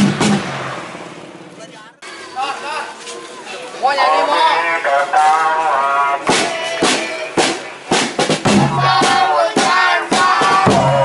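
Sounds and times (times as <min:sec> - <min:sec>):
large drum beating: 0:00.0 - 0:01.6, 0:06.2 - 0:11.0
voices singing: 0:03.8 - 0:11.0.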